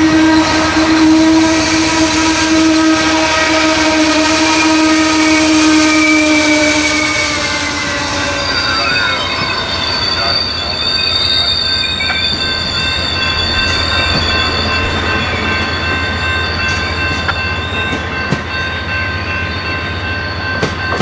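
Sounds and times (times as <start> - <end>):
low rumble of train cars: 0.0 - 21.0
train wheels squealing on rails: 0.0 - 21.0.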